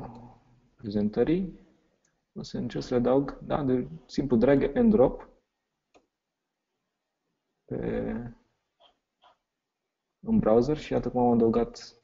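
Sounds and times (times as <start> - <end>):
man speaking: 0.0 - 1.7, 2.4 - 5.4, 7.7 - 8.5, 10.2 - 12.0.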